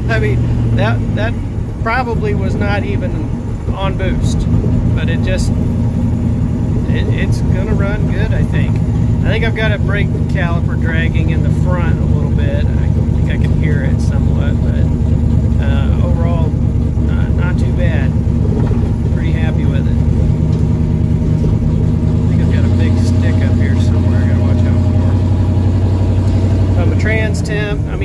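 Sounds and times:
car engine drone: 0:00.0 - 0:28.0
road noise: 0:00.0 - 0:28.0.

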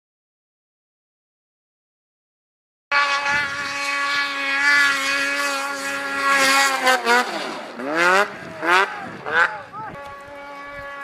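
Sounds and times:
snowmobile engine at high revs: 0:02.9 - 0:11.0.

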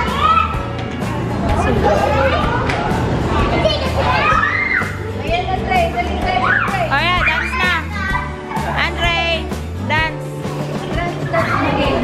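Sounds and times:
children shouting and squealing: 0:00.0 - 0:00.9, 0:01.5 - 0:08.8, 0:11.0 - 0:12.0
background music with bass line: 0:00.0 - 0:12.0.

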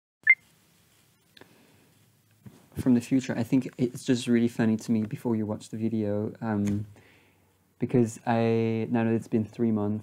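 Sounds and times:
two-tone electronic beep: 0:00.2 - 0:00.4.

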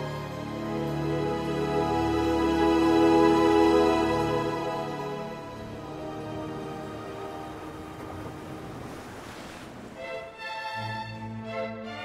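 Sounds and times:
sea waves: 0:00.0 - 0:12.0
soft music: 0:00.0 - 0:12.0
wind: 0:00.0 - 0:12.0.

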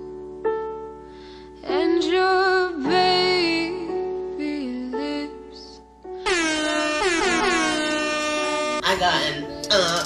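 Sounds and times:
air horn sound effect: 0:06.2 - 0:09.0.

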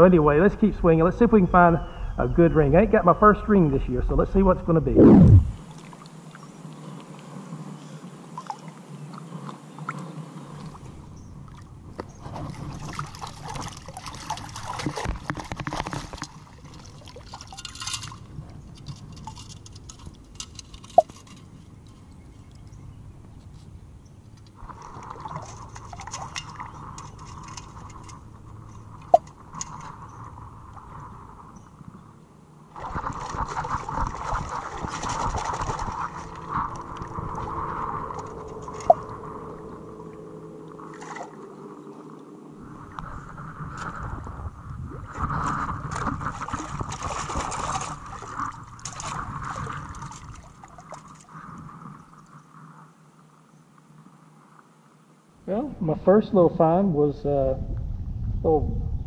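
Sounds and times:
wading in water: 0:04.9 - 0:54.8
short sharp blips: 0:05.0 - 0:05.6
water sloshing and splashing: 0:08.4 - 0:22.7, 0:24.3 - 0:52.5
metal scoop shaken in water: 0:12.4 - 0:21.5, 0:24.8 - 0:28.2, 0:32.8 - 0:37.2, 0:45.8 - 0:50.5.

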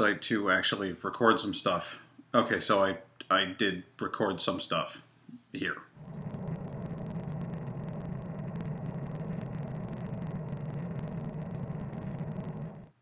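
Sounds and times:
jet engines droning: 0:06.1 - 0:13.0.

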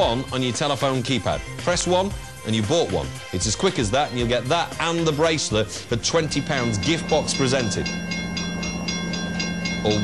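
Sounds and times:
background music held chord: 0:00.0 - 0:10.0
fast even ticking beat: 0:05.5 - 0:10.0.

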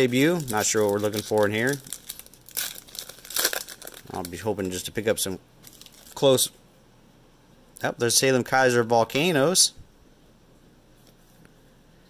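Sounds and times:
foil wrapper crinkling and tearing: 0:00.0 - 0:04.8, 0:05.6 - 0:06.3.

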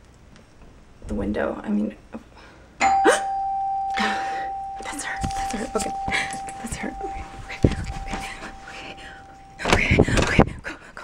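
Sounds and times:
steady high tone: 0:02.8 - 0:09.8.

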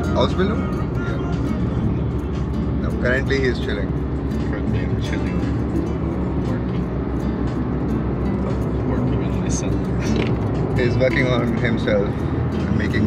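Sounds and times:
car cabin road rumble: 0:00.0 - 0:13.0.

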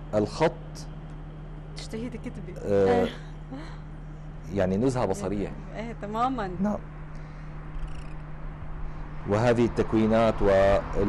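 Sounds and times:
faint background rumble: 0:00.0 - 0:11.0
steady low hum: 0:00.0 - 0:11.0.

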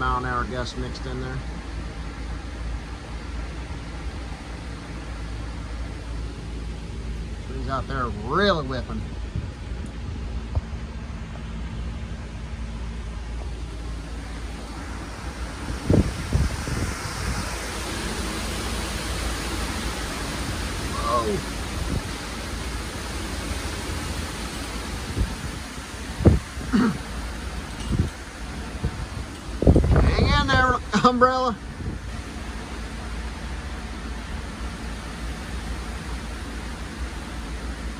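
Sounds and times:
wind rushing through tree: 0:08.3 - 0:37.9
wind buffeting microphone: 0:09.0 - 0:31.0, 0:31.6 - 0:32.7.

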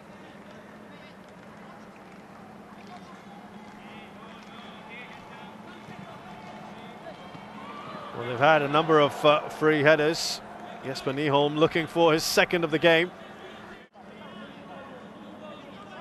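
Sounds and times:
distant shouting voices: 0:03.4 - 0:11.7.

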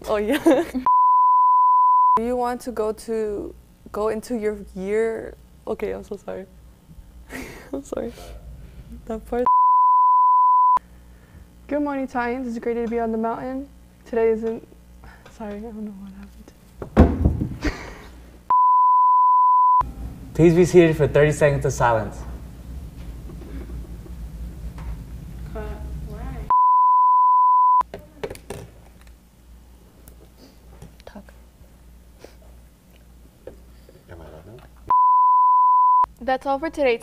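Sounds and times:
sine tone bleep: 0:00.9 - 0:02.2, 0:09.4 - 0:10.8, 0:18.5 - 0:19.9, 0:26.5 - 0:27.9, 0:34.9 - 0:36.1
steady electronic beep: 0:00.9 - 0:02.2, 0:09.4 - 0:10.8, 0:18.5 - 0:19.8, 0:26.5 - 0:27.8, 0:34.9 - 0:36.1.

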